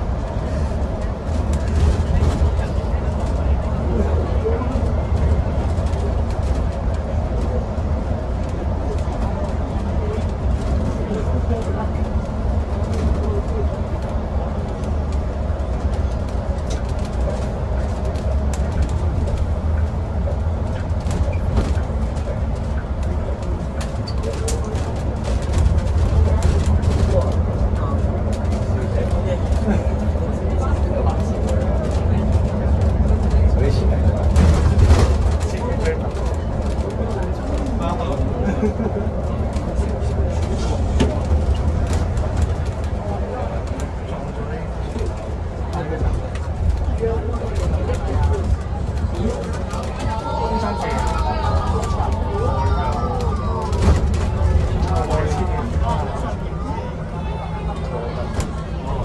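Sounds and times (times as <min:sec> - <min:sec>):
bus road rumble: 0:00.0 - 0:59.0.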